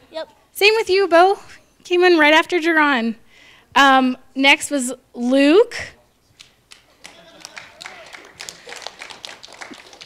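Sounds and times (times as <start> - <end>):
scattered clapping: 6.4 - 10.0.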